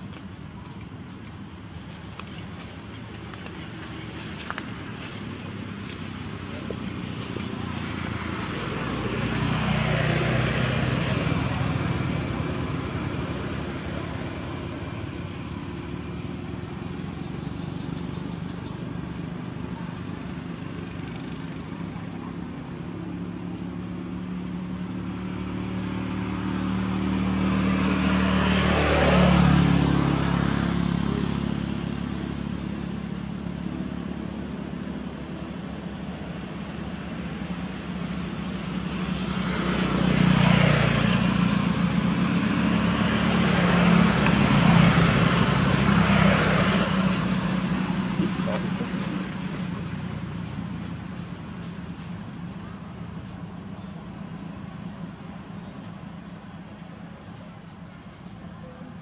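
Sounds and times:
motor vehicle passing: 0.0s - 57.0s
background traffic: 0.0s - 59.0s.

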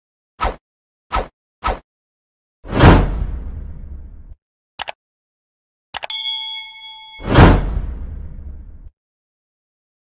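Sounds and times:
bell ding: 6.0s - 7.6s.

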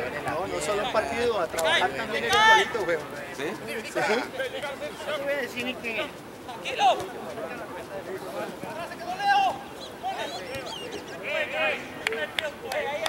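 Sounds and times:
voices talking and calling out: 0.0s - 13.0s.

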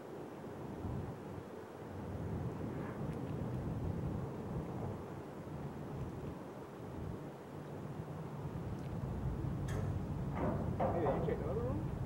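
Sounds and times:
wind buffeting microphone: 0.3s - 12.0s.

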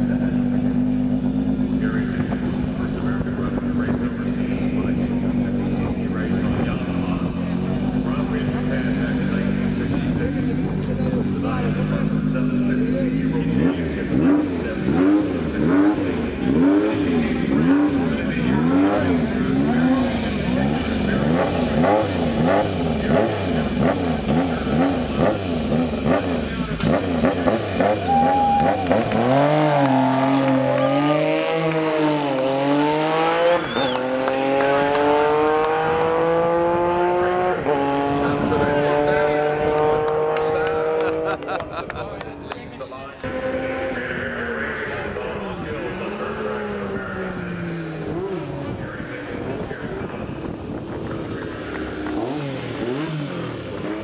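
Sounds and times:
motorcycle engine revving: 0.0s - 54.0s.

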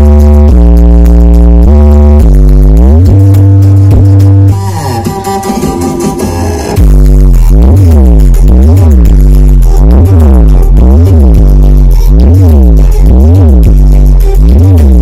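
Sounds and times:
loud electronic dance music: 0.0s - 15.0s.

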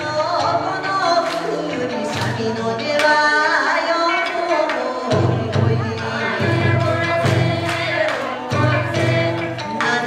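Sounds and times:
people singing: 0.0s - 10.0s.

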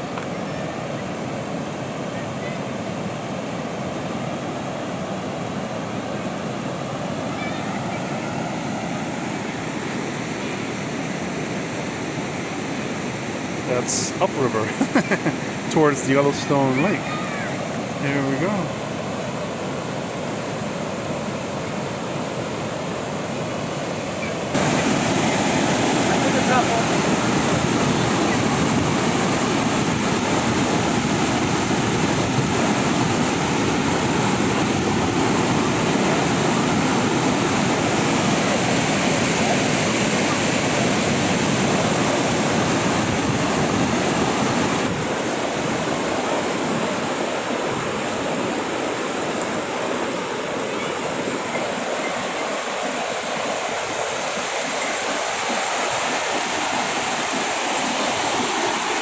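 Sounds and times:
whitewater rushing: 0.0s - 59.0s.

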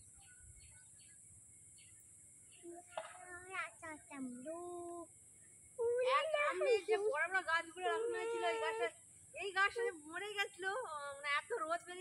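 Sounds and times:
woman speaking in sing-song voice: 5.9s - 12.0s.

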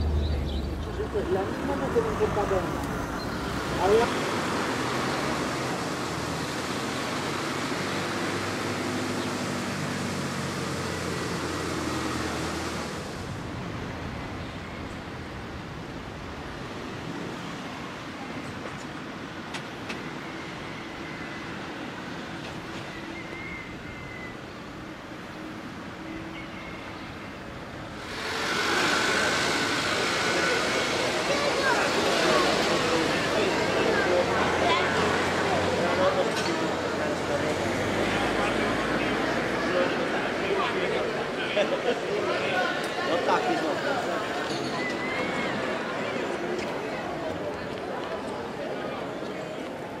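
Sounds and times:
small car engine driving: 0.0s - 13.9s, 27.9s - 48.4s.

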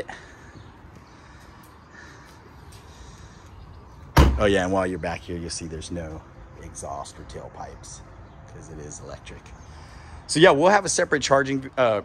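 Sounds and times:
quiet outdoor background noise: 0.0s - 12.0s.

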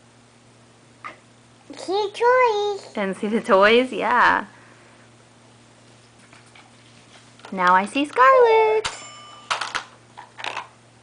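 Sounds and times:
short bell-like ring: 8.9s - 9.6s
plastic toy pieces clattering: 9.5s - 10.7s.

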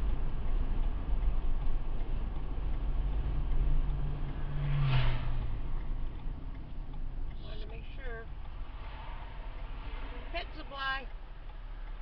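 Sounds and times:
car road and engine rumble: 0.0s - 12.0s
low engine hum: 0.0s - 12.0s.

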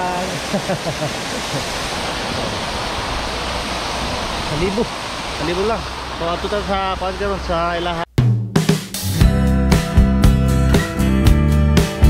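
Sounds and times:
fountain water splashing: 0.0s - 8.0s.

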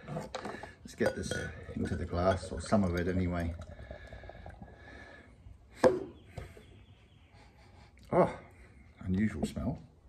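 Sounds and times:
beer pouring into a glass: 0.8s - 5.2s.

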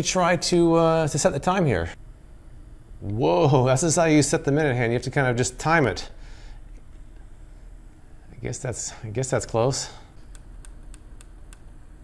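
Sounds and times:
small fan whirring: 0.0s - 12.0s.

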